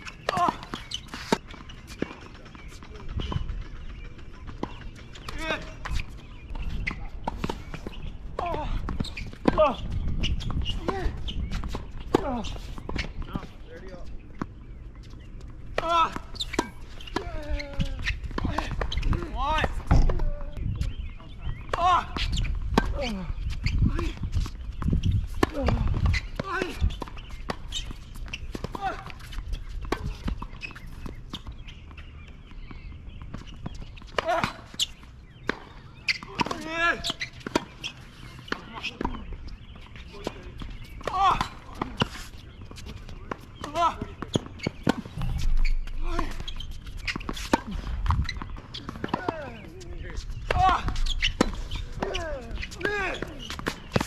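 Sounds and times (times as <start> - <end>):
shoes squeaking on court: 0.0 - 54.0.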